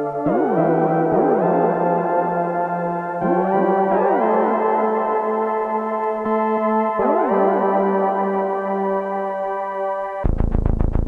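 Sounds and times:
synthesizer pad chord: 0.0s - 10.3s.

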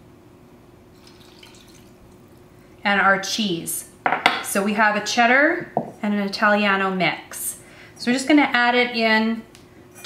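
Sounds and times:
milk pouring into a pot: 1.0s - 2.2s.

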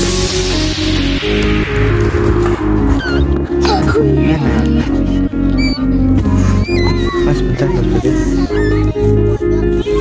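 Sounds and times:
pop music with steady beat: 0.0s - 7.6s
puppy squeaking: 5.5s - 6.0s, 6.6s - 7.3s, 8.4s - 9.0s.

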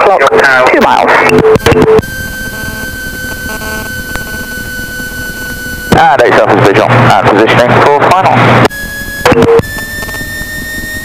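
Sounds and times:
high-pitched electrical whine: 1.2s - 11.0s
light aircraft engine drone: 2.0s - 11.0s.

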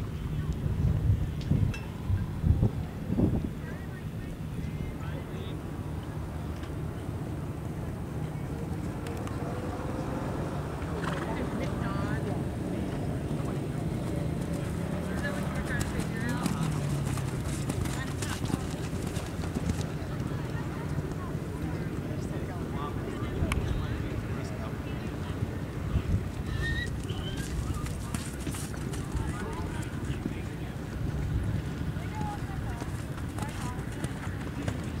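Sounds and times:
faint indistinct voices: 0.0s - 35.0s
horse hoofbeats on sand: 13.9s - 20.3s, 27.2s - 35.0s.

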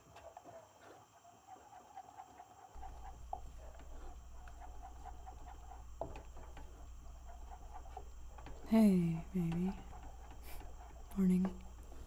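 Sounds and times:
low steady hum: 2.6s - 12.0s.

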